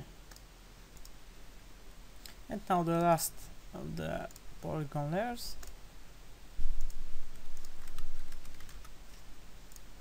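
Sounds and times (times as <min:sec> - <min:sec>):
faint computer mouse clicks: 0:00.3 - 0:01.2.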